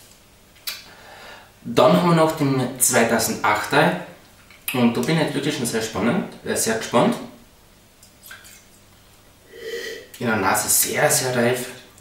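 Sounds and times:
man sniffing: 9.5 - 10.1.

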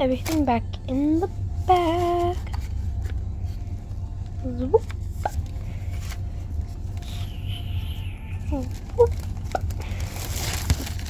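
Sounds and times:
low rumble inside car: 0.0 - 11.0
paper bag rustling: 8.4 - 11.0.

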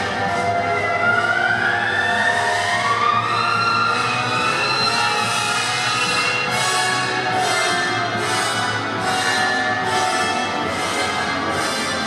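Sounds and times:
music over speakers: 0.0 - 12.0.

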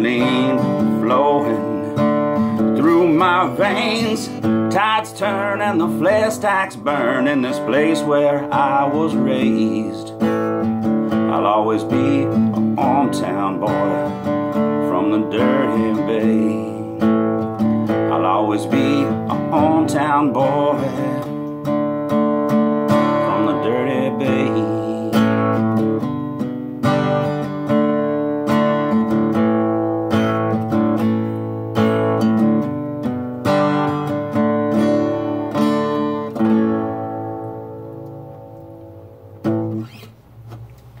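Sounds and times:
acoustic guitar strumming: 0.0 - 41.0.

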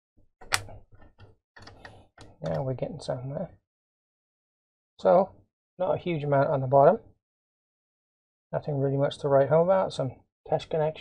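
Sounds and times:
plastic clicks and rattling: 0.4 - 2.7.

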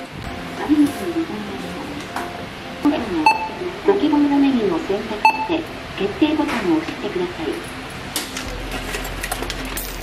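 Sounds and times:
short electronic beep: 3.2 - 3.6.

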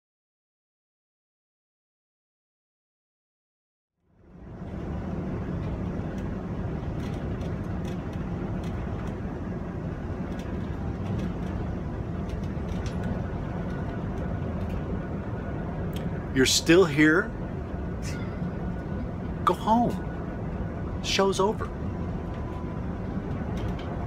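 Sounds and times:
low rumble inside a bus: 4.0 - 24.0
light clicks and rattles: 5.5 - 15.3, 22.2 - 24.0.

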